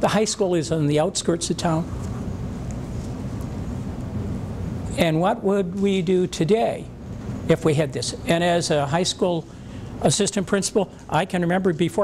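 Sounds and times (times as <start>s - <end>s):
low room rumble: 0.0s - 12.0s.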